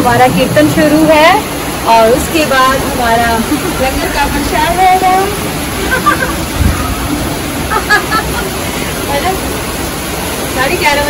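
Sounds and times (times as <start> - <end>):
rain falling: 0.0 - 11.0
voices: 0.0 - 11.0.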